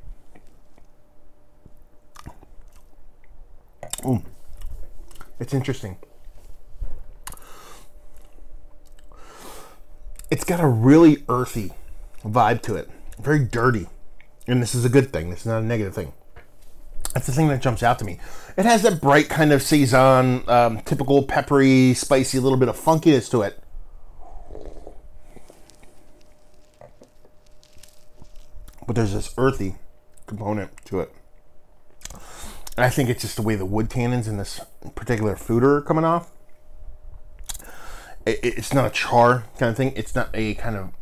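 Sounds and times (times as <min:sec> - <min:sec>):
lip and tongue smacks: 0:02.1 - 0:05.3
man sipping and swallowing: 0:24.3 - 0:28.8
short breath: 0:32.1 - 0:32.7, 0:37.6 - 0:38.2.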